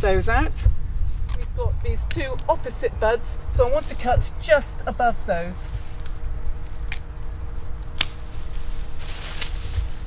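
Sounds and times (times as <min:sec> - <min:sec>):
rustle: 0:03.4 - 0:10.0.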